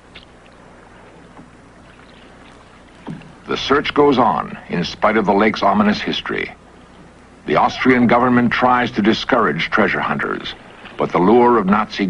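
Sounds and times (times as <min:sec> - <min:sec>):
light hiss: 0:00.0 - 0:12.0
low hum: 0:00.0 - 0:12.0.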